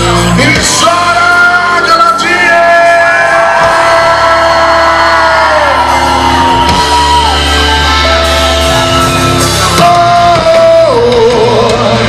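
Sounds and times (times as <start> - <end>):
loud instrumental backing: 0.0 - 12.0
man singing long notes: 0.3 - 6.0, 9.6 - 12.0.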